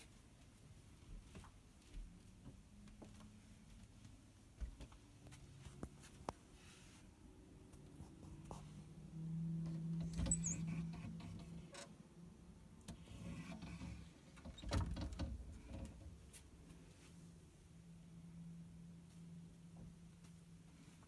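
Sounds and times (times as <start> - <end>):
low steady hum: 0.1 - 21.0
short high squeak: 10.2 - 10.9.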